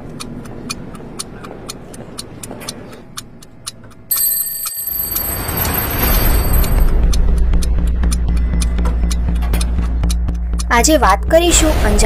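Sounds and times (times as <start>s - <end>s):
clock ticking: 0.0s - 11.4s
steady high-pitched tones: 4.1s - 6.9s.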